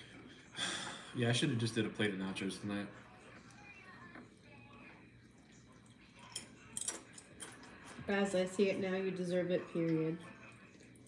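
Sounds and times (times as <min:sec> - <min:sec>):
faint background voice or music: 0:01.2 - 0:11.0.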